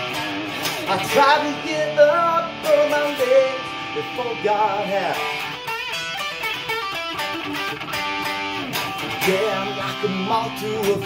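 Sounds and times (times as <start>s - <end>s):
electric guitar playing: 0.0s - 11.0s
person singing: 0.8s - 5.5s, 9.1s - 11.0s.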